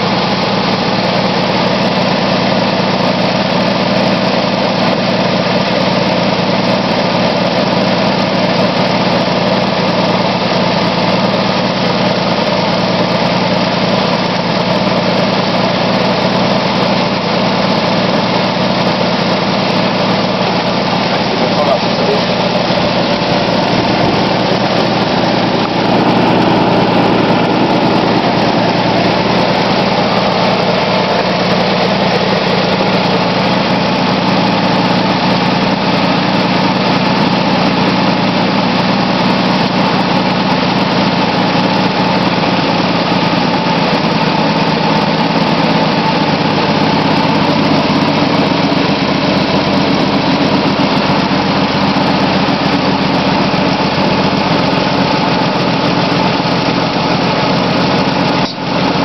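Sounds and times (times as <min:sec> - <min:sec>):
car engine idling: 0:00.0 - 0:59.0.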